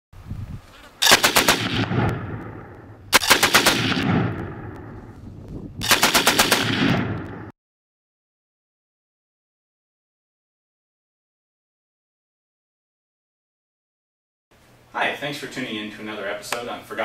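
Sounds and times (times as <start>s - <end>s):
machine gun bursts with echo: 1.0s - 4.8s, 5.8s - 7.5s.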